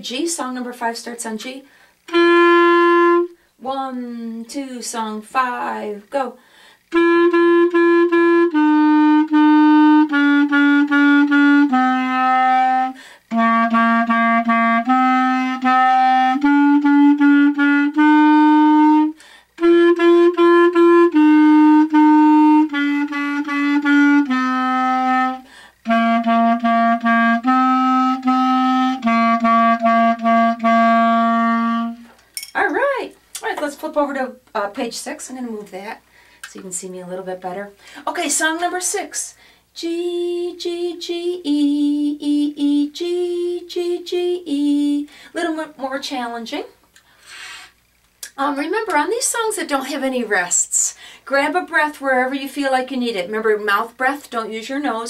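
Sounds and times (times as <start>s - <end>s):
clarinet melody: 2.1s - 3.4s, 6.9s - 32.1s
person speaking: 32.4s - 39.3s.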